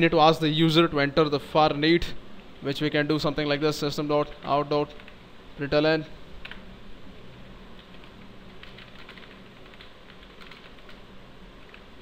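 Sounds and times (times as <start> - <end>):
typing on computer keyboard: 7.8 - 11.0, 11.6 - 11.8.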